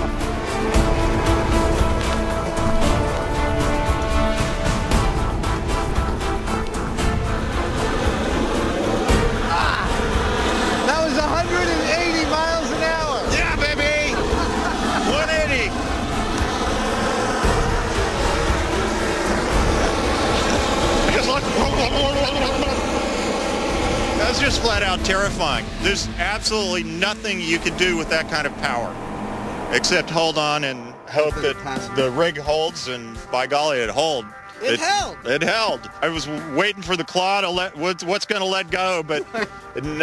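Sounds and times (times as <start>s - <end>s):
loud rushing noise: 0.0s - 33.3s
music: 0.0s - 40.0s
man laughing and exclaiming: 9.3s - 10.0s, 10.8s - 15.8s, 21.1s - 22.9s, 39.0s - 40.0s.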